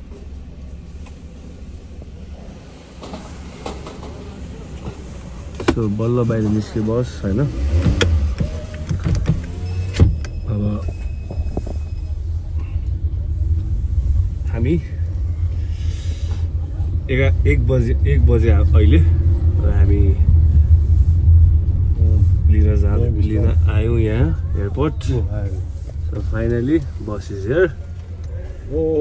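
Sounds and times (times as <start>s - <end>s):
low car rumble: 0.0s - 29.0s.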